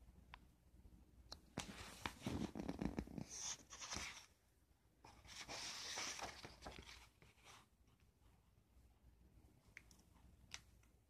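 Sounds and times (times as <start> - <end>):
paper pages rustling: 1.6 - 4.3, 5.1 - 8.1.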